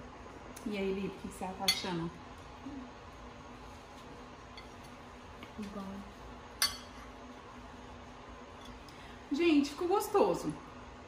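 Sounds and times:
fork clinking on plate: 6.6s - 7.0s.

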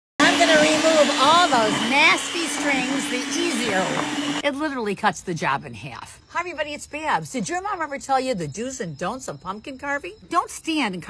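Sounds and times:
electric hand mixer hum: 0.2s - 4.4s
woman speaking: 0.2s - 11.0s.

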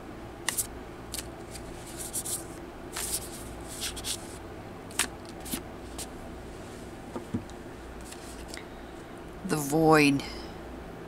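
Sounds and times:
cards being shuffled: 0.4s - 6.2s, 8.0s - 8.6s.

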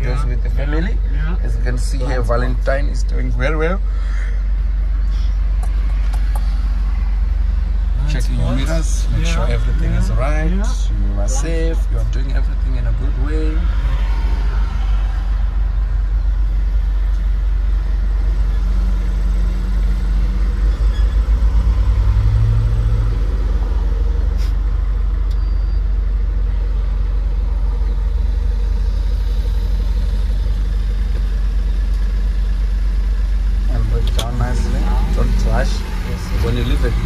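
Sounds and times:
truck engine and road rumble: 0.0s - 37.0s.

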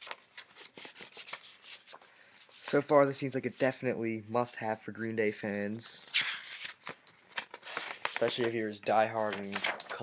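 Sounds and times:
paper rustling and crinkling: 0.0s - 3.0s, 5.5s - 10.0s.

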